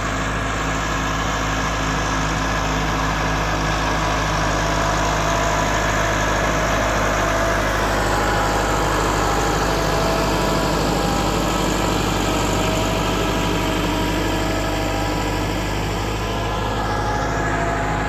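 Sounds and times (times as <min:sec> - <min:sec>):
tractor diesel engine running: 0:00.0 - 0:18.0.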